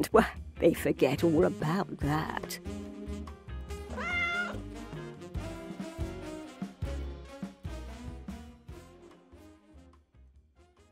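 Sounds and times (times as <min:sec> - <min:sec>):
background music: 0:00.0 - 0:10.9
cat meow: 0:03.9 - 0:04.7.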